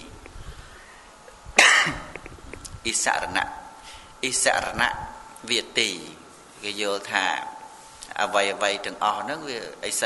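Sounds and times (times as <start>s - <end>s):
man coughing: 1.6s - 2.3s.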